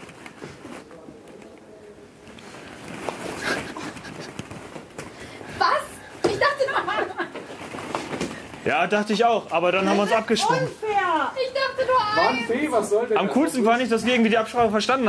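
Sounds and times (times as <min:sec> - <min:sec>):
quiet low voices: 0:00.4 - 0:04.3
people laughing: 0:03.3 - 0:04.8, 0:06.3 - 0:07.6
excited talk: 0:05.6 - 0:07.2, 0:08.7 - 0:15.0.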